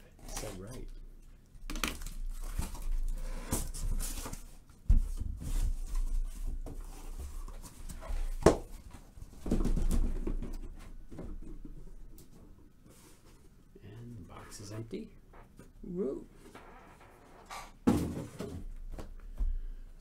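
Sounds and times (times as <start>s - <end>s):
cardboard rustling and scraping: 2.3s - 10.2s.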